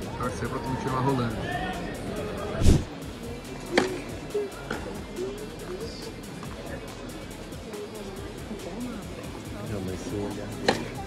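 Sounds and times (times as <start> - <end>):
background music: 0.0 - 11.0
heavy thump: 2.6 - 2.9.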